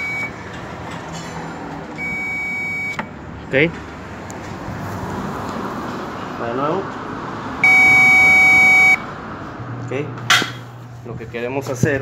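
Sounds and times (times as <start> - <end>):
circuit tester beeping: 0.0 - 0.4, 2.0 - 3.1, 7.6 - 9.1.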